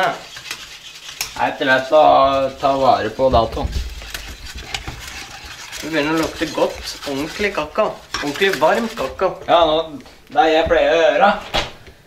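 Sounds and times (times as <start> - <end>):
whisk scraping saucepan: 0.0 - 10.5.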